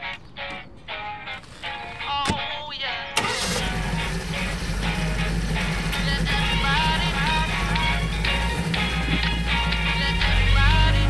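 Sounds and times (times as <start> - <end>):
music with gliding melody: 0.0 - 11.0
car engine starting and idling: 1.4 - 2.4, 3.2 - 11.0.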